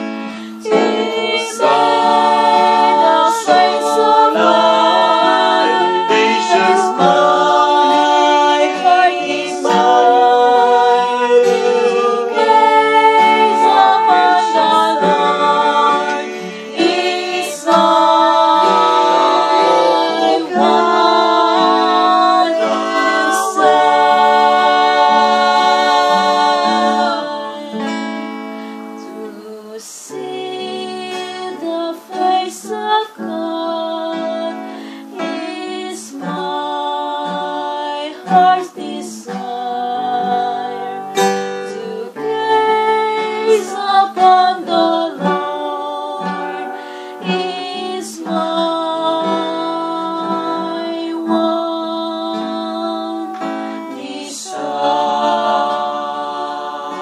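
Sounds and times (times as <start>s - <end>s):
guitar accompaniment: 0.0s - 57.0s
person singing: 0.0s - 57.0s.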